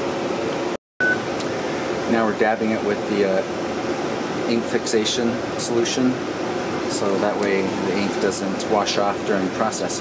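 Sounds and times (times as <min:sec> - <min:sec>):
ventilation hum: 0:00.0 - 0:10.0
short high beep: 0:01.0 - 0:01.2.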